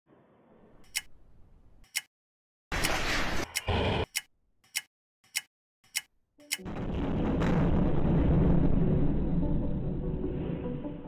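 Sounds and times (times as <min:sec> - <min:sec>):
clock ticking: 0:01.8 - 0:02.1, 0:03.5 - 0:06.6.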